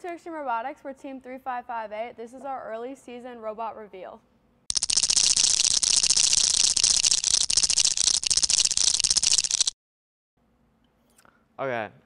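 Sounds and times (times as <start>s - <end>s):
rapid rattle of tiny clicks: 4.7s - 9.8s.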